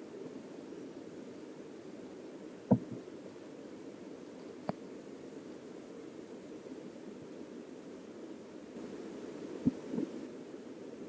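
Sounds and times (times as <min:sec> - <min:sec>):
stream water heard underwater: 0:00.0 - 0:11.0
dull knocks: 0:02.7 - 0:03.0.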